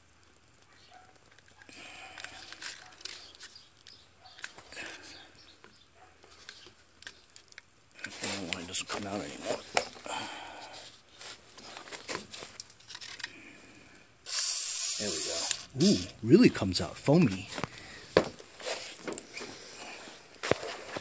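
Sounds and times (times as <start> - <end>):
aerosol can spraying hiss: 14.2 - 16.1.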